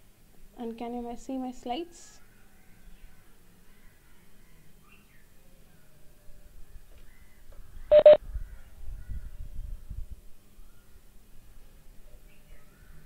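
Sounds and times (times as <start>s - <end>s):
short electronic beeps: 7.9s - 8.2s.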